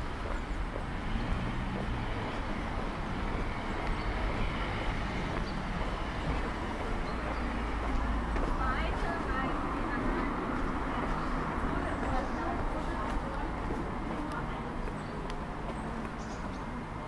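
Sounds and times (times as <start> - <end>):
low rumble of road traffic: 0.0 - 17.0.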